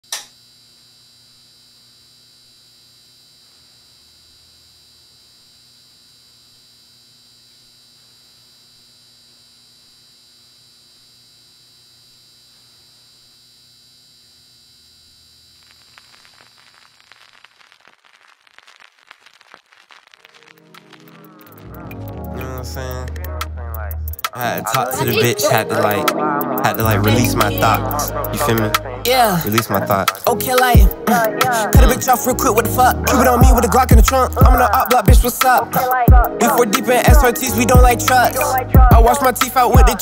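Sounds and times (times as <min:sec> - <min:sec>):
sharp click: 0:00.1 - 0:00.4
static hiss and hum: 0:00.1 - 0:40.0
crackling: 0:14.8 - 0:40.0.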